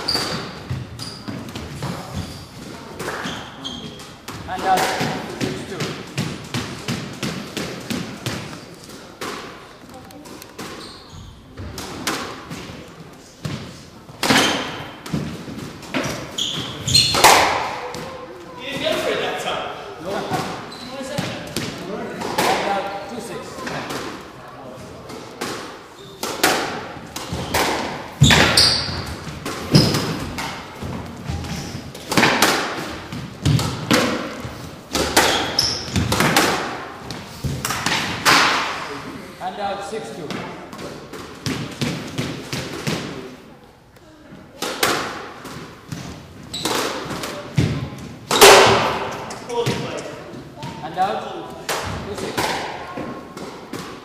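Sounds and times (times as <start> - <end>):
squash ball knocks: 17.1 - 18.1, 25.4 - 38.8, 44.6 - 50.8.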